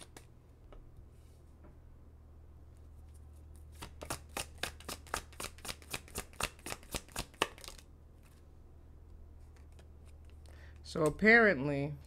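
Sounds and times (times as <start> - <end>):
cards being shuffled: 0.0 - 0.3, 3.1 - 8.5, 9.4 - 11.1.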